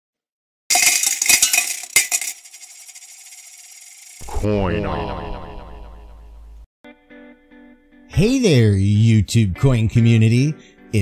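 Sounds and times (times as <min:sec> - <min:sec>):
coins clinking: 0:00.7 - 0:04.2.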